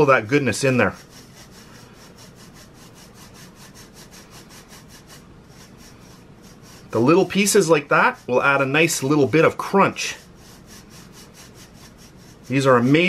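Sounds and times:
powder rubbed through metal sieve: 0.0 - 13.0.

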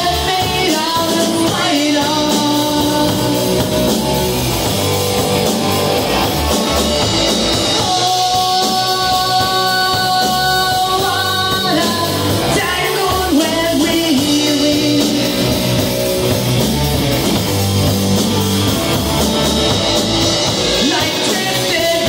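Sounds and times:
lead vocals: 0.0 - 16.9, 18.9 - 22.0
live rock band playing: 0.0 - 22.0.

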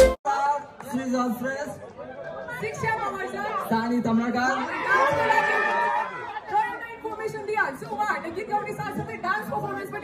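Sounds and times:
audience chattering: 0.0 - 10.0.

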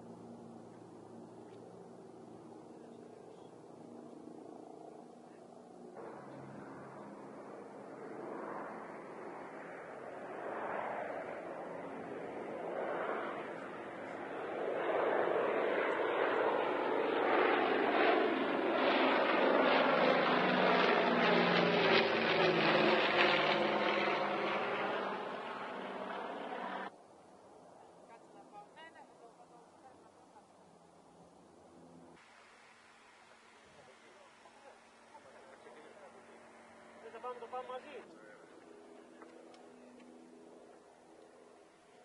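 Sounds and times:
distant propeller aircraft engine: 0.0 - 42.0.

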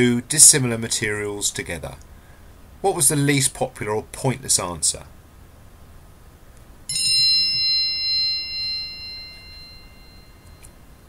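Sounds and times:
bright bell-like chime: 6.9 - 11.0.

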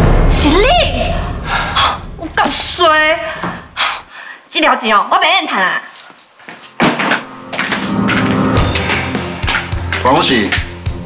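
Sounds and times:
music with sustained tones: 7.0 - 11.0.

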